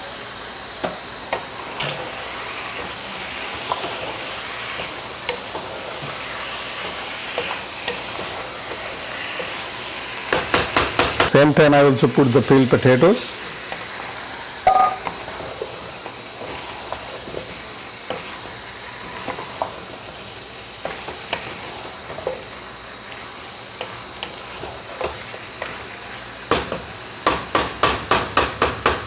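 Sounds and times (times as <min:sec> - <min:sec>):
food sizzling in pot: 0:00.0 - 0:29.0
spatula knocking on pot: 0:14.7 - 0:15.1.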